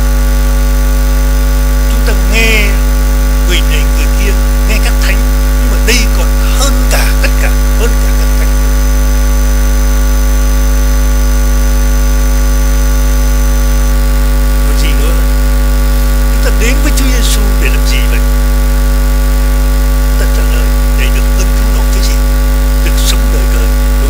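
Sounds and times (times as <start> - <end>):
loud electrical mains hum: 0.0 - 24.0.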